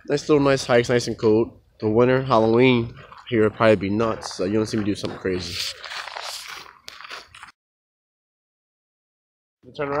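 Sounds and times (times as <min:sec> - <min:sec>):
footsteps on gravel: 0:01.9 - 0:07.6.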